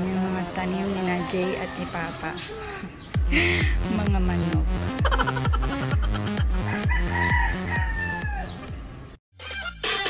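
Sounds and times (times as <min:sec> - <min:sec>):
background music with bass line: 0:03.1 - 0:08.8
rooster crowing: 0:06.0 - 0:08.7.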